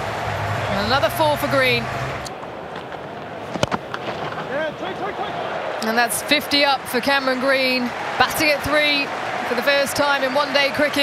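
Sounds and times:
stadium crowd noise: 0:00.0 - 0:11.0.

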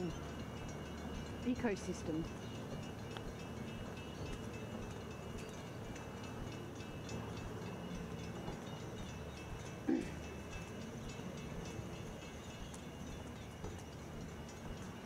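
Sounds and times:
light irregular ticks: 0:00.0 - 0:15.0
outdoor background noise: 0:00.0 - 0:15.0.

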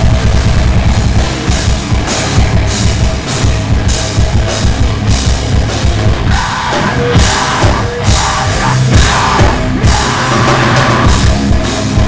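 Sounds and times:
drum kit with cymbals: 0:00.0 - 0:12.0
electric guitars: 0:00.0 - 0:12.0.

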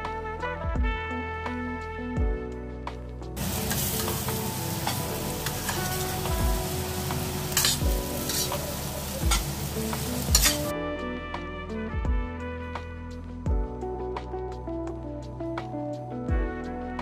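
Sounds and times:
background music: 0:00.0 - 0:17.0
meat sizzling in a pan: 0:03.4 - 0:10.7
metal spatula scraping pan: 0:03.4 - 0:10.7.

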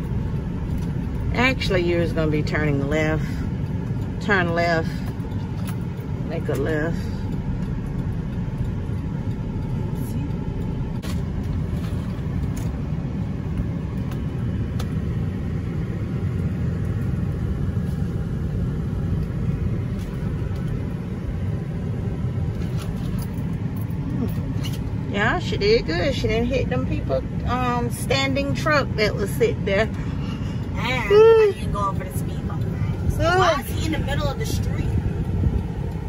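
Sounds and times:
truck engine and tyres rumbling: 0:00.0 - 0:36.0.

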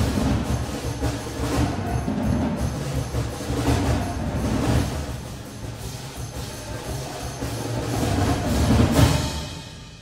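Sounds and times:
drum and cymbal roll: 0:00.0 - 0:10.0.

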